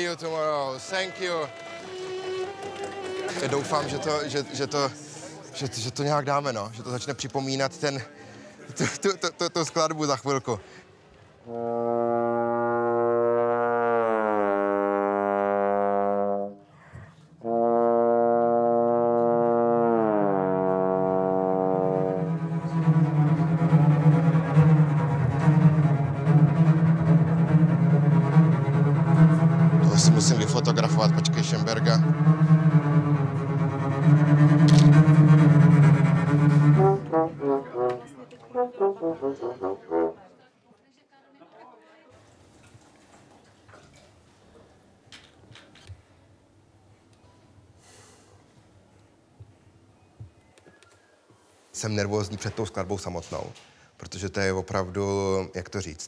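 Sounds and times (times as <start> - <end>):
brass instrument low notes: 11.4 - 16.7, 17.4 - 40.2
orchestra playing loud chords: 17.5 - 40.2.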